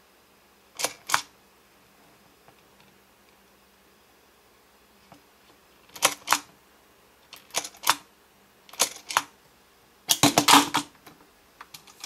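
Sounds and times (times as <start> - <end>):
plastic toy clicks: 0.8 - 1.3, 5.9 - 6.5, 7.3 - 8.0, 8.7 - 9.3, 10.1 - 10.9.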